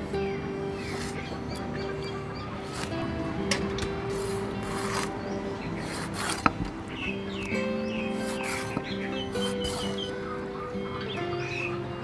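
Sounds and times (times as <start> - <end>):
scraping on a wooden chopping board: 4.0 - 5.2, 5.8 - 6.7, 8.1 - 10.1.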